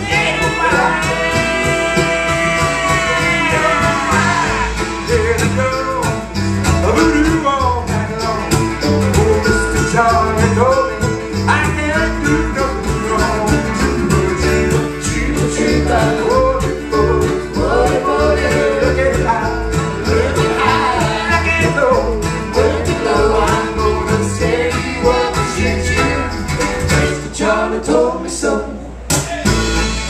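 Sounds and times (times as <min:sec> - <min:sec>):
mandolin: 0:00.0 - 0:30.0
strummed acoustic guitar: 0:00.0 - 0:30.0
upright bass: 0:00.0 - 0:30.0.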